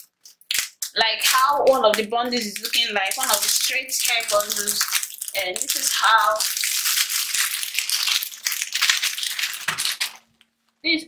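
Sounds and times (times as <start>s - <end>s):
plastic bags crinkling: 0.0s - 10.7s.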